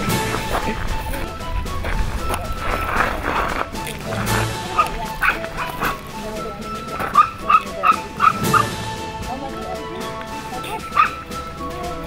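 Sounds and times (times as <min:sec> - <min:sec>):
puppies yipping: 0:00.0 - 0:08.8, 0:09.8 - 0:12.0
background music: 0:00.0 - 0:12.0.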